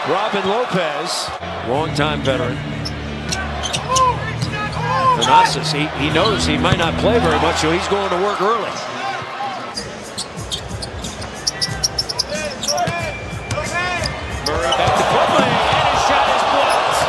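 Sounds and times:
arena crowd noise: 0.0 - 17.0
sneaker squeaks: 2.8 - 5.5, 9.8 - 15.0.

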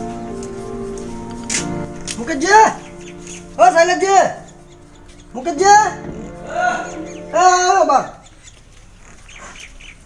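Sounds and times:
faint outdoor background: 0.0 - 10.0
short bird calls: 2.7 - 3.7, 4.3 - 10.0.

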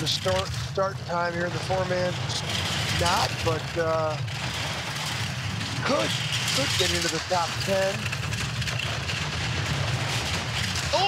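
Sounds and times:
bobsleigh runners rumbling on ice: 0.0 - 11.0.

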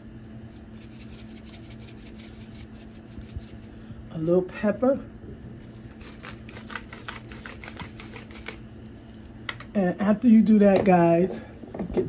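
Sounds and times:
steady low hum: 0.0 - 12.0
salt shaker shaking: 0.5 - 3.7.

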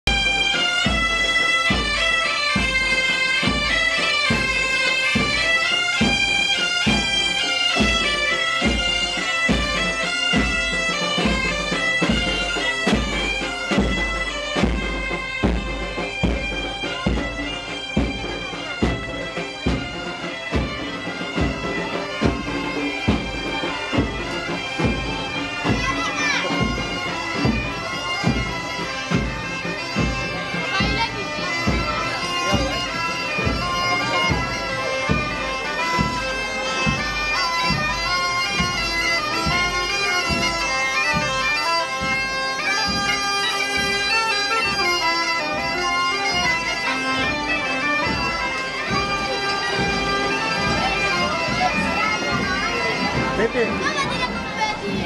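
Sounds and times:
bagpipes playing a marching tune: 0.0 - 55.0
drumbeat: 0.1 - 55.0.

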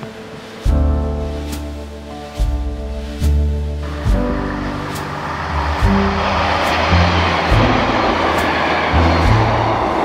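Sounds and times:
background music with steady beat: 0.0 - 10.0
diesel train passing: 3.7 - 10.0.

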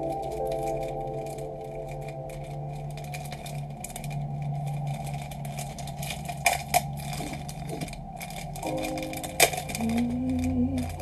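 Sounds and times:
soft ambient music: 0.0 - 11.0
steady low hum: 0.0 - 11.0.

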